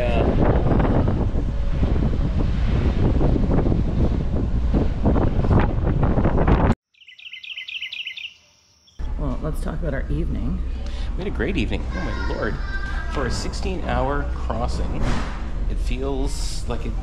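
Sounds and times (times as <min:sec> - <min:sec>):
wind buffeting microphone: 0:00.0 - 0:06.8
quick high chirps: 0:07.0 - 0:08.4.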